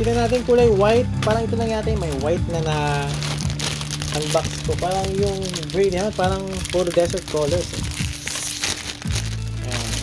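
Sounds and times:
background music with bass: 0.0 - 10.0
plastic bag crinkling: 0.0 - 10.0.

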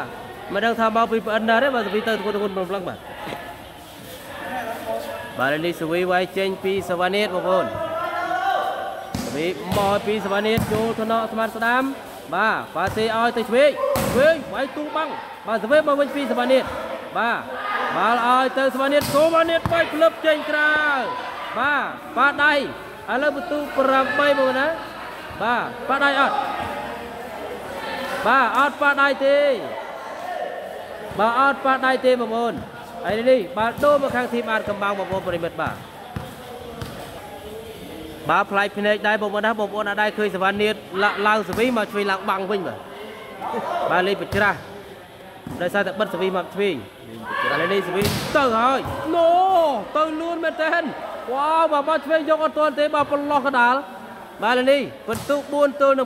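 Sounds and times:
faint voices in hall: 0.0 - 56.0
volleyball bouncing on court: 9.1 - 11.3, 12.8 - 14.4, 19.0 - 20.0, 32.4 - 37.1, 48.0 - 49.2, 55.1 - 55.5.

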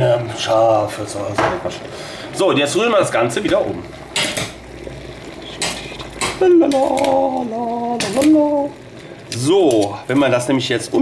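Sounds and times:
person humming: 6.4 - 8.8.

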